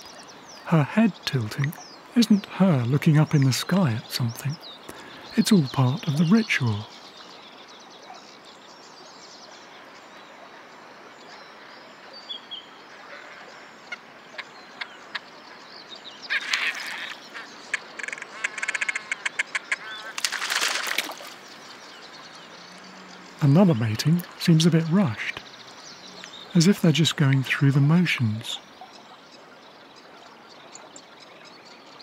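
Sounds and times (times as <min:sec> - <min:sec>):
grebe calls: 0:00.0 - 0:07.0, 0:16.2 - 0:29.6
steady background hiss: 0:00.0 - 0:32.0
water splashing: 0:17.8 - 0:25.8.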